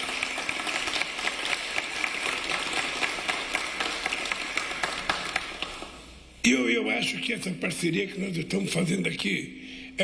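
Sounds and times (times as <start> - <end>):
crowd applauding: 0.0 - 6.0.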